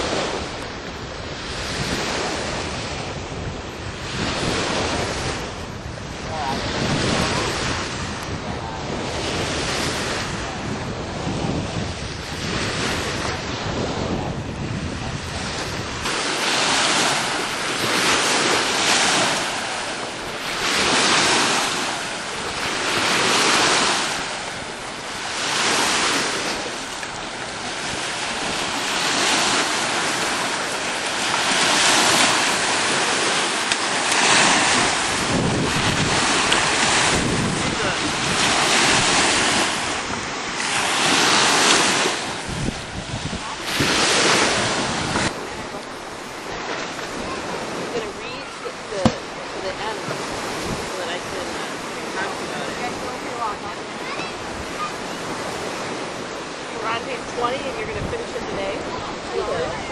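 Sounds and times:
small waves breaking on sand: 0.0s - 59.9s
wind rumble on microphone: 0.0s - 59.9s.

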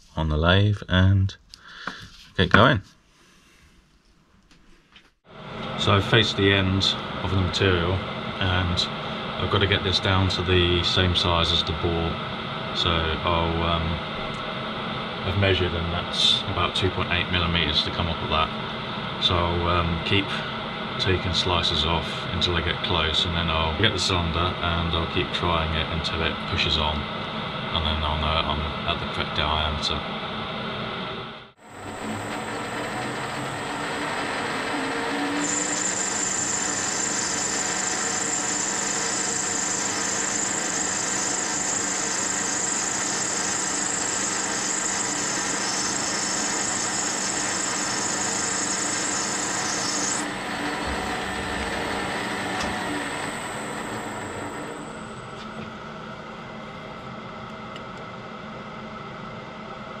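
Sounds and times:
high whine: 5.3s - 57.8s
metal lathe cutting: 31.6s - 55.4s.

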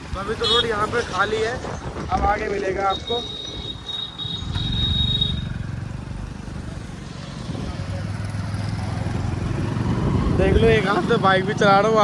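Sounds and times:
road and wind noise: 0.0s - 12.0s
motorcycle engine running: 3.8s - 11.5s.

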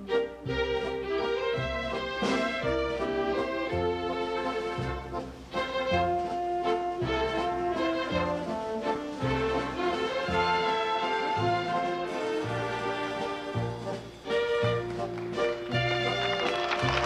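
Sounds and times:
orchestral held chords: 0.0s - 17.0s.

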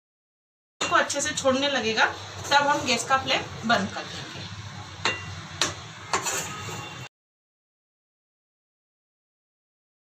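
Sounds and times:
metal spatula scraping a pan: 2.4s - 7.1s.

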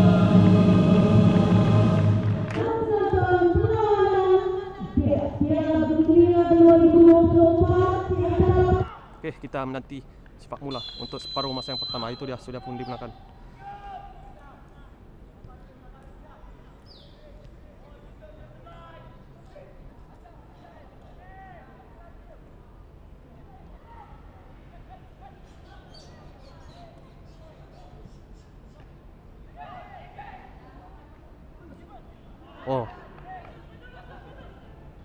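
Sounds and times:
low background noise: 0.0s - 35.0s.

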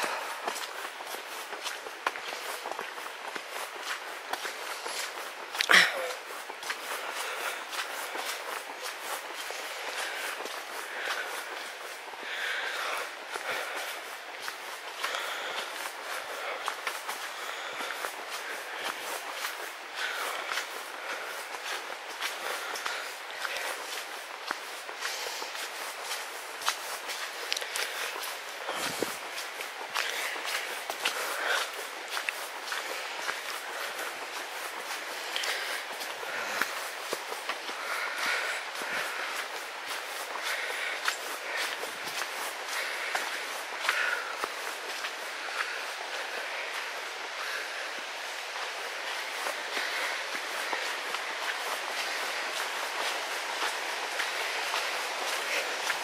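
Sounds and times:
footsteps on stony track: 0.0s - 56.0s.

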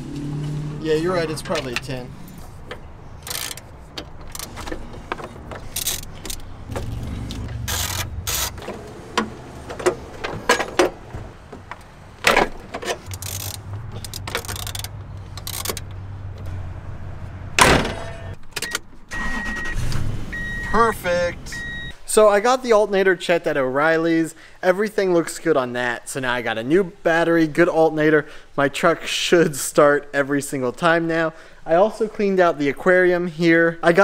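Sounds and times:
metal tools clicking and knocking: 2.7s - 6.5s, 12.7s - 16.0s.

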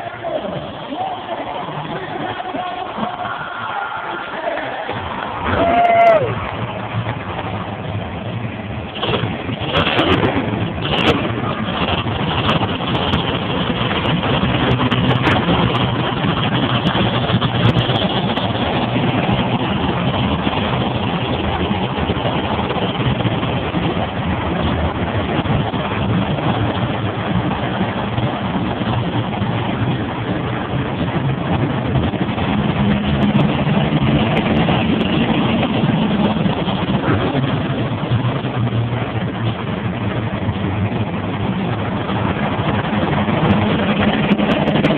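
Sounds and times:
truck engines running loud: 0.0s - 44.9s.

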